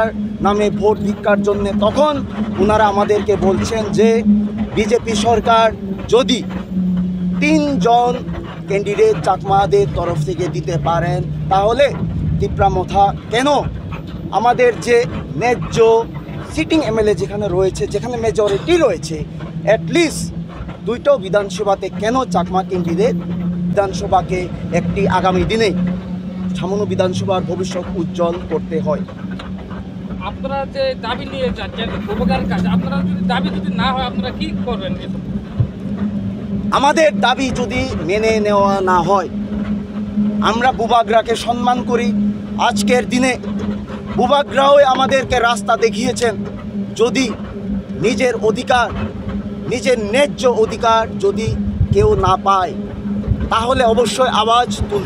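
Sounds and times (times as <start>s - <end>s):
man speaking: 0.0s - 6.5s, 7.4s - 13.7s, 14.3s - 20.3s, 20.9s - 25.8s, 26.6s - 29.0s, 30.2s - 35.2s, 36.7s - 39.3s, 40.4s - 43.4s, 44.1s - 46.4s, 47.0s - 47.4s, 48.0s - 48.9s, 49.7s - 52.8s, 53.5s - 55.0s
steady low hum: 0.0s - 55.0s
vehicle engine idling: 0.0s - 55.0s.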